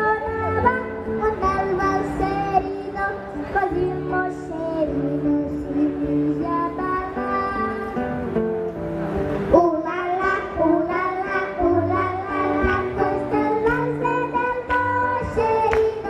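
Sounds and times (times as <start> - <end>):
acoustic guitar: 0.0 - 16.0
children singing: 9.5 - 16.0.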